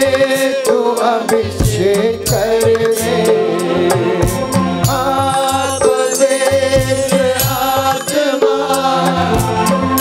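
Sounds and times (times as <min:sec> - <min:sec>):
drum beat: 0:00.0 - 0:03.4, 0:04.0 - 0:10.0
sharp high percussion strikes: 0:00.0 - 0:10.0.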